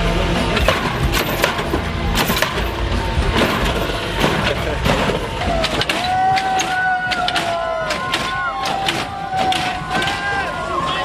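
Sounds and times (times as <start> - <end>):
music: 0.0 - 11.0
car suspension clanks and bangs: 0.3 - 11.0.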